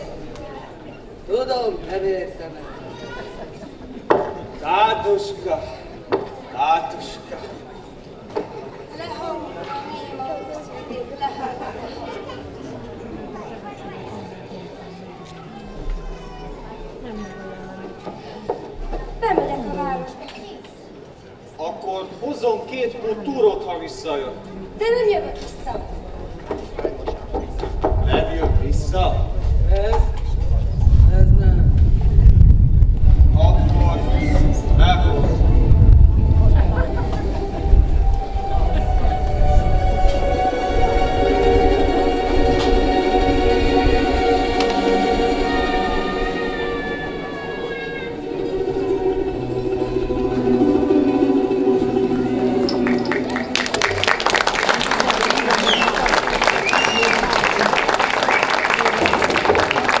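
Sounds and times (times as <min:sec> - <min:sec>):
heavy low rumble: 0:27.6 - 0:54.7
music with long held notes: 0:34.2 - 0:54.9
audience applause: 0:52.4 - 1:00.0
whistle-like calls: 0:55.5 - 0:57.4.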